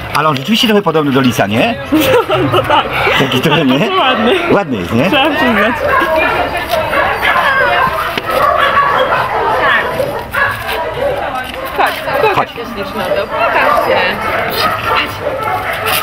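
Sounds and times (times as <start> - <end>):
people talking: 0.2 - 10.1, 10.7 - 15.3
dogs barking: 2.0 - 16.0.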